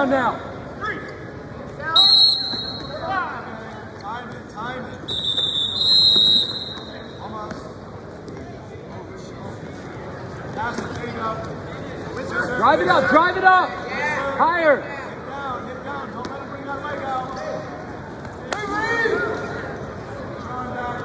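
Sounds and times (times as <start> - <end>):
referee's whistle blasts: 1.9 - 3.1, 5.1 - 7.2.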